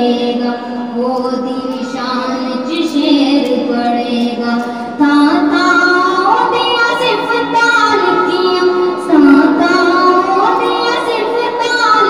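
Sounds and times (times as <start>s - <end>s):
woman singing devotional song: 0.0s - 12.0s.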